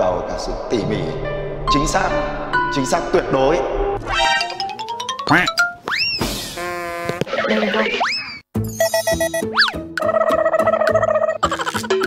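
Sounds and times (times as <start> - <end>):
bouncy rhythmic tune: 4.0 - 6.4, 8.6 - 12.0
playful background music: 4.0 - 6.6, 8.0 - 12.0.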